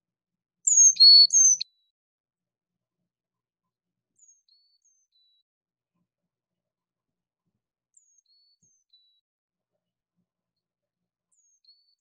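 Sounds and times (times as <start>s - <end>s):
chickadee whistled song: 0.7s - 1.6s.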